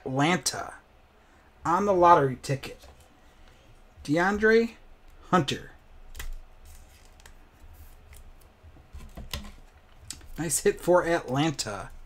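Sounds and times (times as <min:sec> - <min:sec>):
card rustling: 0:06.2 - 0:11.4.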